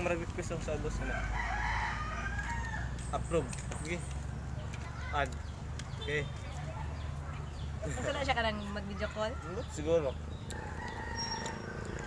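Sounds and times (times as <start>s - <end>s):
rooster crowing: 1.0s - 3.0s, 10.5s - 12.0s.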